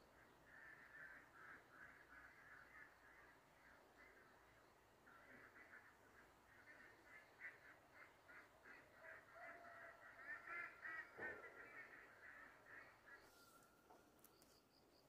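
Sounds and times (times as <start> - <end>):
faint rapid bird calls: 0.0 - 15.0.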